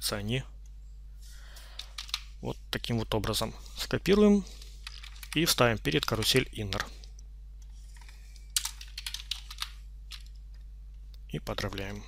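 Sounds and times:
steady low hum: 0:00.0 - 0:12.0
computer keyboard keystrokes: 0:01.8 - 0:02.3, 0:04.8 - 0:06.9, 0:08.0 - 0:10.4.

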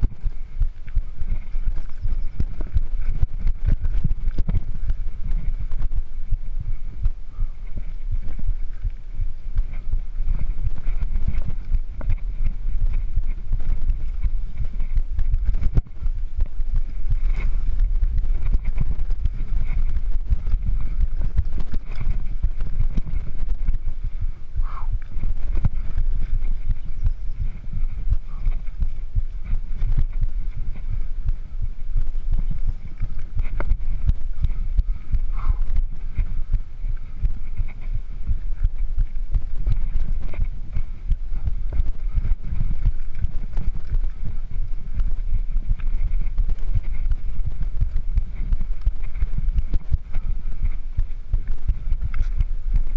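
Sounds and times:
low rumble of tyres and air: 0:00.0 - 0:52.9
bike frame rattling and knocking: 0:09.6 - 0:23.9.

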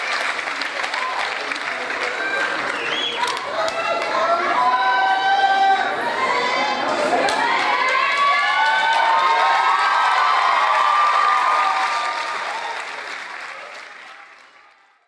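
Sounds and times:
audience applauding: 0:00.0 - 0:04.4, 0:07.0 - 0:15.0
crowd shouting and whooping: 0:00.8 - 0:13.1.

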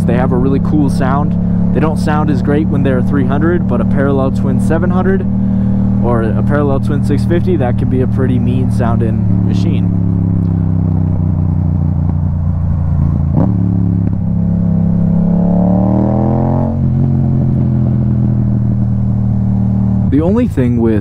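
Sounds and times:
motorcycle engine revving: 0:00.0 - 0:21.0.

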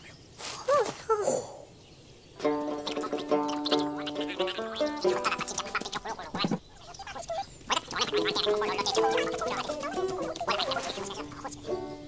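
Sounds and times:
bouncy cartoon music: 0:02.4 - 0:12.0
comic sound effects: 0:02.7 - 0:11.6.

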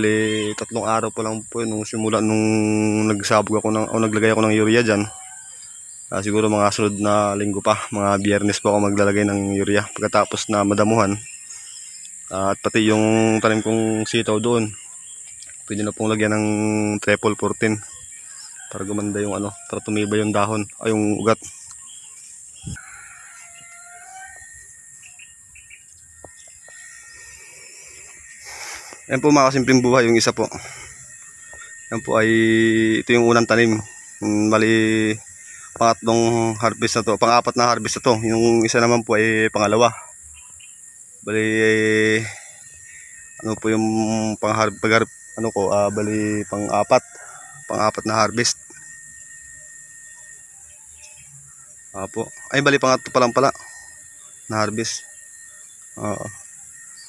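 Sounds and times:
faint bird chirps: 0:00.0 - 0:57.0
insects droning: 0:00.0 - 0:57.0
thin steady tone: 0:00.0 - 0:57.0
rustling hiss: 0:05.7 - 0:37.0.

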